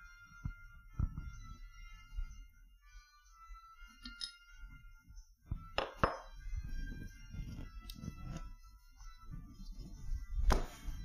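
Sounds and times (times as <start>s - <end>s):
faint music: 0.0s - 11.0s
sharp metallic clinks: 4.0s - 4.5s.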